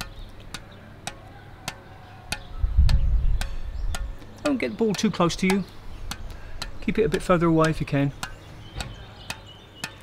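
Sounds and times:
ball bouncing on racket strings: 0:00.0 - 0:10.0
wind rumble on microphone: 0:02.5 - 0:04.1.

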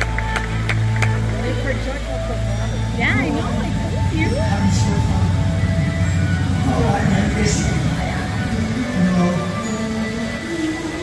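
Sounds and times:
steady deep rumble: 0:00.0 - 0:11.0
voices: 0:00.0 - 0:11.0.

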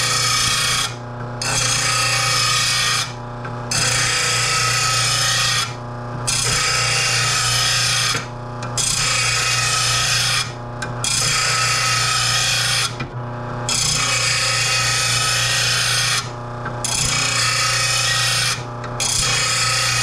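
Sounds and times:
grinder motor hum: 0:00.0 - 0:20.0.

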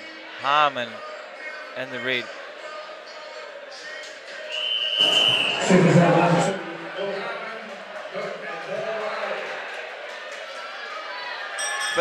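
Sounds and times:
crowd shouting: 0:00.0 - 0:12.0
high-pitched bell tone: 0:11.6 - 0:12.0.

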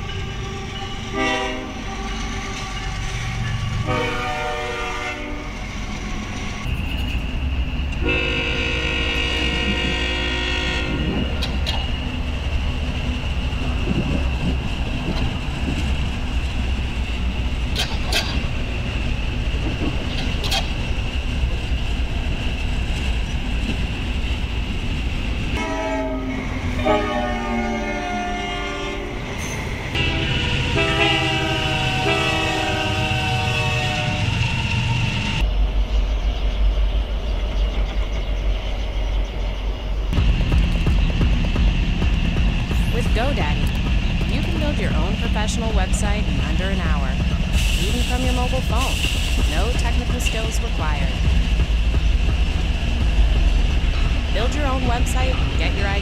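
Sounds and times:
train rumble: 0:00.0 - 0:56.0
locomotive horn blasts: 0:01.1 - 0:01.8, 0:03.8 - 0:05.6, 0:08.0 - 0:11.2, 0:25.6 - 0:29.2, 0:30.0 - 0:34.3
train clicks: 0:11.1 - 0:25.6, 0:40.1 - 0:56.0.

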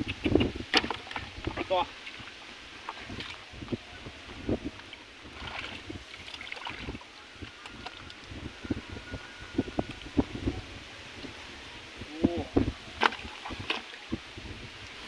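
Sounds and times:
wind on microphone: 0:00.0 - 0:15.0
hands sloshing in muddy water: 0:05.3 - 0:08.2
small splashes: 0:05.3 - 0:08.2.

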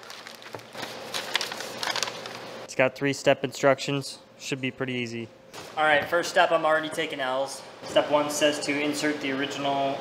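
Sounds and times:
paper being handled: 0:00.0 - 0:02.5
plastic bag crinkling: 0:00.0 - 0:02.5.

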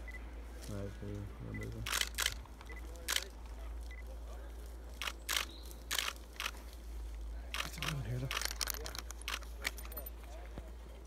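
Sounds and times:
faint distant voices: 0:00.0 - 0:11.0
steady low rumble: 0:00.0 - 0:11.0
short crunching clicks: 0:01.8 - 0:04.0, 0:05.0 - 0:06.7, 0:07.5 - 0:10.0.

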